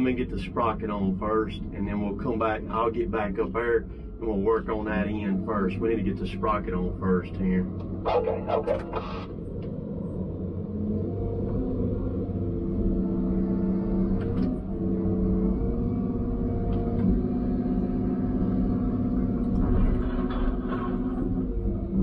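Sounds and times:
diesel engine and hydraulics humming: 0.0 - 22.0.

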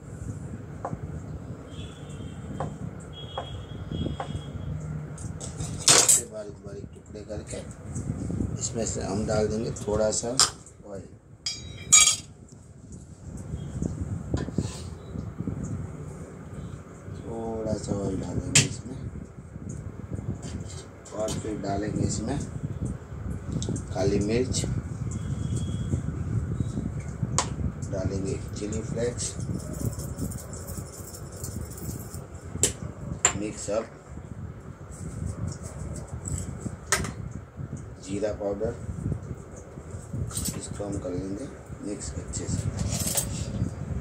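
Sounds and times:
utensil clinking against dish: 11.5 - 12.3
spice shaker rattling: 29.2 - 32.3.

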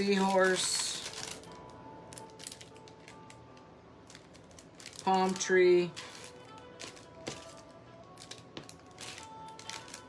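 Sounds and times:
earrings and packaging clicking: 0.0 - 10.0
faint background music: 0.0 - 10.0.

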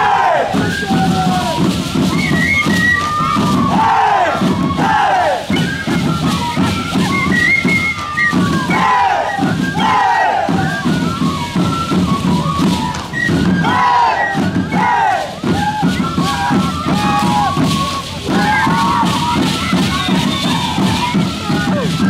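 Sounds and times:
group of dancers shouting: 3.4 - 5.5.

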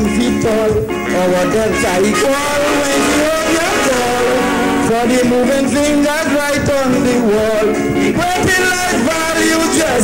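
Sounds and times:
live calypso band: 0.0 - 10.0
person singing: 0.0 - 10.0.

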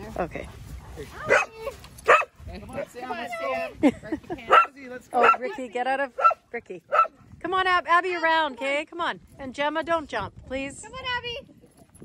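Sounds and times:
dogs barking: 1.2 - 2.4, 4.5 - 5.5, 6.2 - 7.2.

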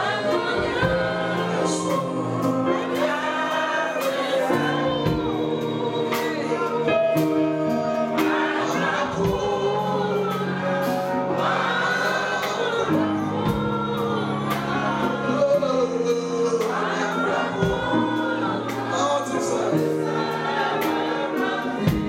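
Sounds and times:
congregation singing: 0.0 - 22.0.

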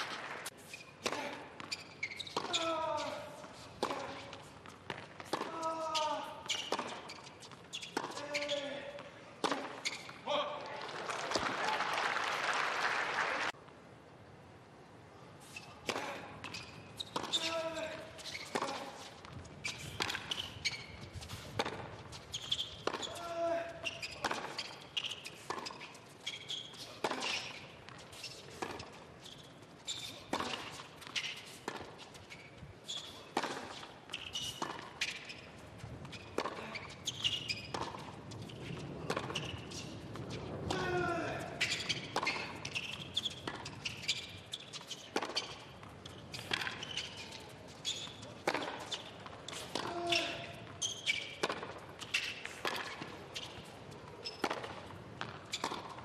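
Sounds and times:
racquets striking tennis ball: 0.0 - 10.3, 15.8 - 56.0
tennis ball bouncing: 1.0 - 10.2, 15.8 - 23.2, 23.8 - 56.0.

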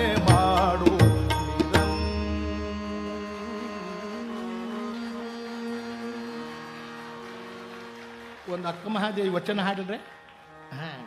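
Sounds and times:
man singing: 0.0 - 4.2
tanpura drone: 1.8 - 11.0.

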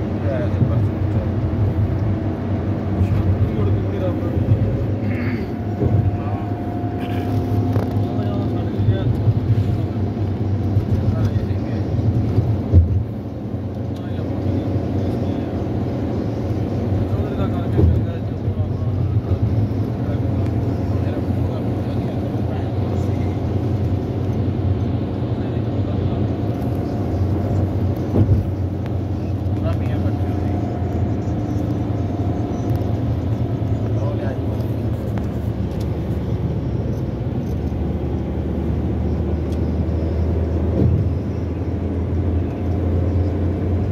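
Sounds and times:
car road and engine rumble: 0.0 - 43.9.

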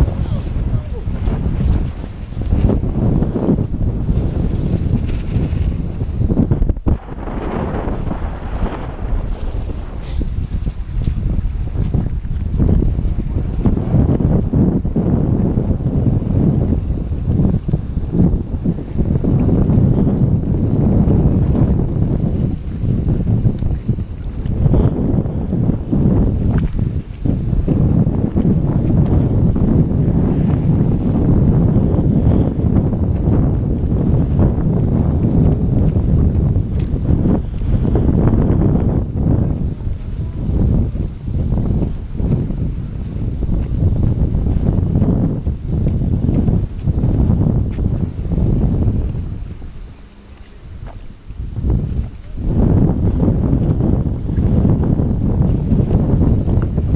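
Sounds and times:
wind buffeting microphone: 0.0 - 56.9.

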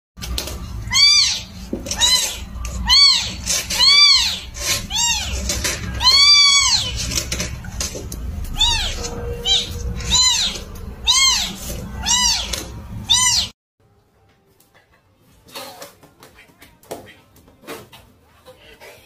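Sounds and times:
kittens meowing: 0.8 - 7.0, 8.5 - 13.5.

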